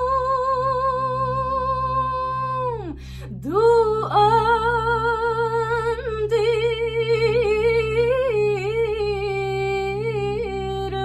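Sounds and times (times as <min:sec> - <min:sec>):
low backing tone: 0:00.0 - 0:11.0
woman singing with vibrato: 0:00.0 - 0:11.0.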